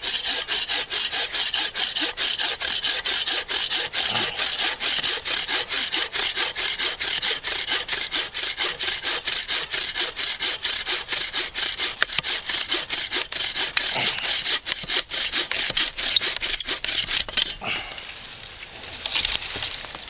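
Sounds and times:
saw cutting through log: 0.0 - 17.9.

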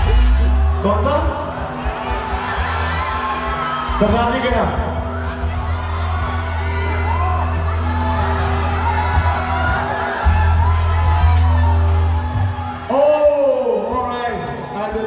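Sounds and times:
loud shout: 2.0 - 14.2.

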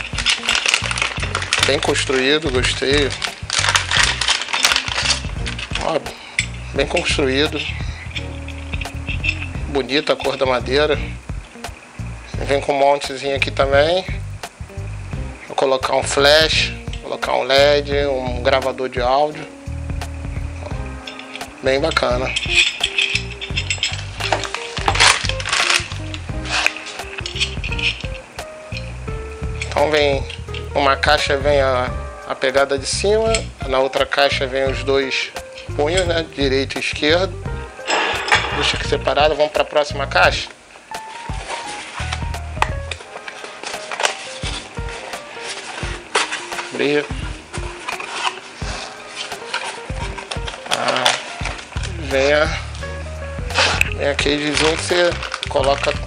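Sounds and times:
metal clamp clicking and rattling: 0.0 - 10.6, 22.3 - 28.9, 29.6 - 30.7
plastic bag crinkling: 0.0 - 10.6, 22.3 - 28.8, 41.1 - 52.8, 53.6 - 56.0
soft background music: 0.0 - 56.0.

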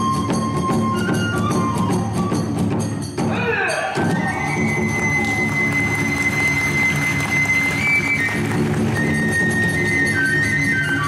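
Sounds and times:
driving taiko drumming: 0.0 - 11.0
bamboo flute long high note: 4.0 - 11.0.

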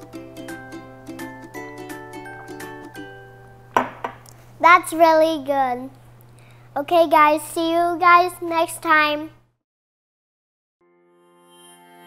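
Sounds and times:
light background music: 0.0 - 3.9
glass set down on stone: 3.7 - 4.2.

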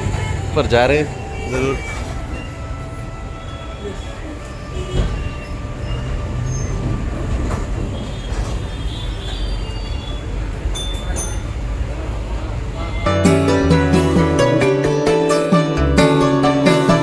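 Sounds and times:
tram rumbling and rattling: 0.0 - 13.0
wheel squeaks and clicks: 4.4 - 11.5.

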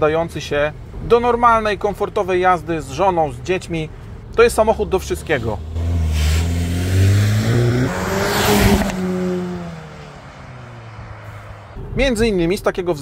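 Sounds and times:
car accelerating away: 4.6 - 12.0.

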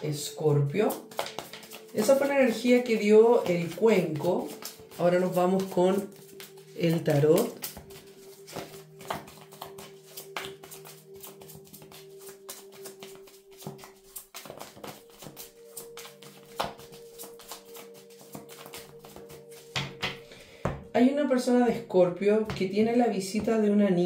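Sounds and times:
quiet background music: 0.0 - 24.0
cards being shuffled: 0.7 - 20.2.

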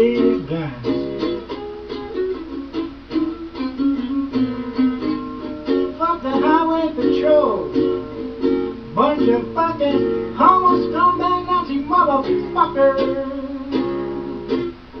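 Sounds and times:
plucked string instrument blues: 0.0 - 15.0.

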